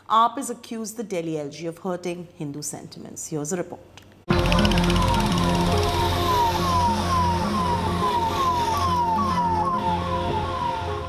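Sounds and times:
police siren: 4.3 - 11.0.

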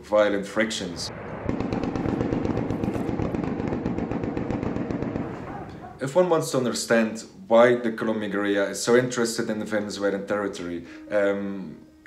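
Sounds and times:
automatic gunfire: 1.2 - 5.7.

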